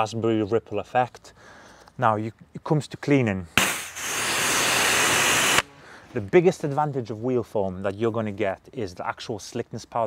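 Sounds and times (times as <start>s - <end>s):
liquid spraying from nozzle: 3.6s - 5.6s.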